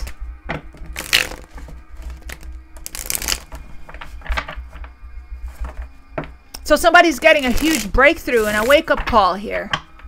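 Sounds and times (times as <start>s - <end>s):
steady low hum: 0.0s - 8.9s
cards shuffling rustle: 0.9s - 4.8s, 7.4s - 8.8s.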